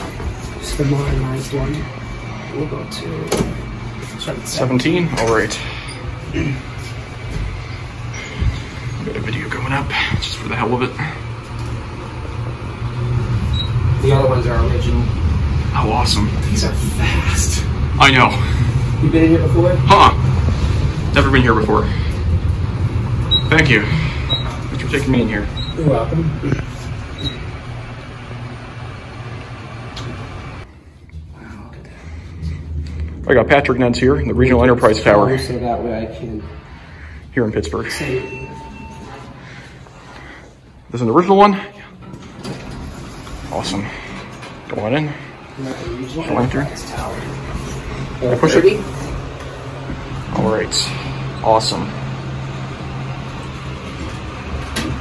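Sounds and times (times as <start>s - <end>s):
elevator rushing and humming: 0.0s - 55.0s.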